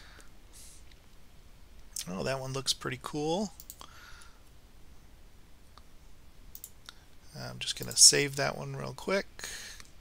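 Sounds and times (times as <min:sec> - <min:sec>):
low steady hum: 0:00.0 - 0:10.0
computer mouse clicks: 0:03.6 - 0:03.9, 0:06.5 - 0:07.0.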